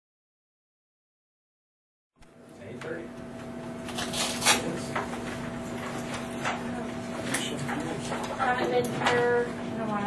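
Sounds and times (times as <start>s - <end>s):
steady hum: 2.2s - 10.0s.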